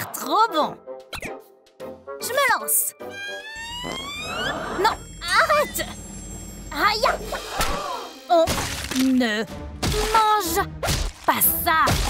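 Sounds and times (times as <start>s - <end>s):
woman speaking: 0.0s - 0.8s
rising comedic tone: 3.1s - 6.0s.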